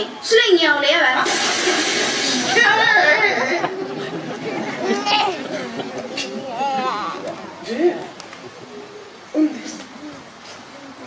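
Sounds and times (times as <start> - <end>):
loud burst of hiss: 1.2 - 2.7
actors speaking: 1.3 - 10.0.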